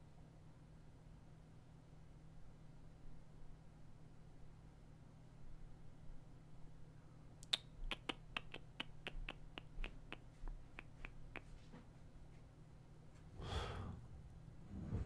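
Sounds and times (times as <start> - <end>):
soft rush of noise: 13.1 - 15.0.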